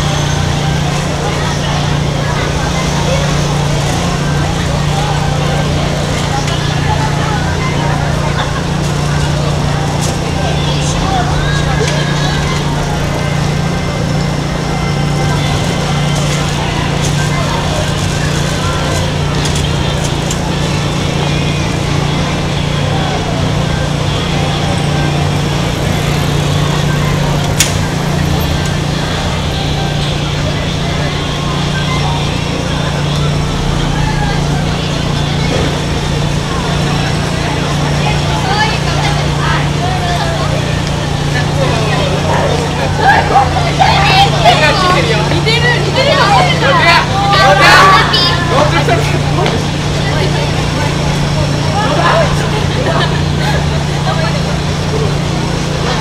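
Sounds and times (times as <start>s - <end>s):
crowd voices: 0.0s - 56.0s.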